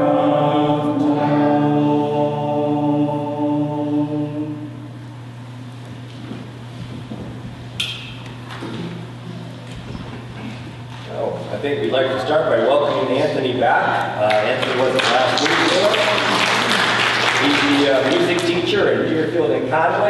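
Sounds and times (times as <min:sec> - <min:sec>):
church choir holding a chord: 0:00.0 - 0:05.3
low steady hum: 0:00.0 - 0:20.0.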